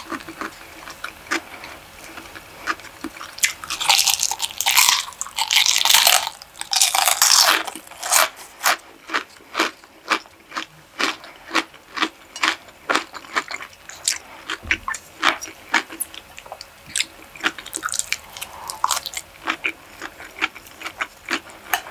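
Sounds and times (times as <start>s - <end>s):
chewing: 0.0s - 21.9s
crisp crunching of fried food: 0.0s - 21.9s.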